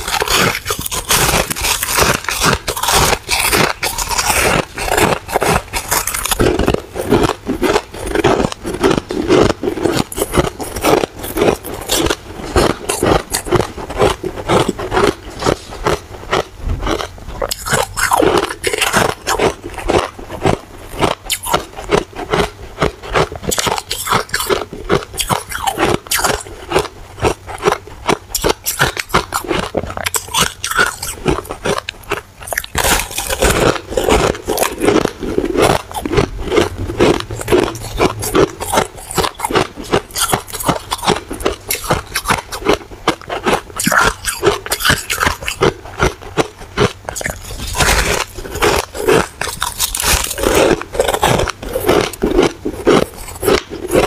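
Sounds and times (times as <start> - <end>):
ice being chewed: 0.0 - 54.0.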